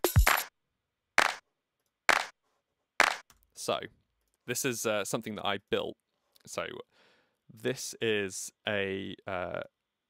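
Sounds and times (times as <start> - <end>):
sampled handclap hits: 0.0 - 0.5, 1.2 - 1.4, 2.1 - 2.4, 3.0 - 3.3.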